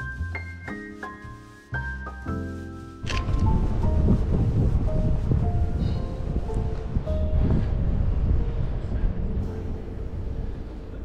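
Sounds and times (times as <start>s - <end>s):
faint music: 0.0s - 11.0s
wind rumbling on microphone: 3.0s - 11.0s.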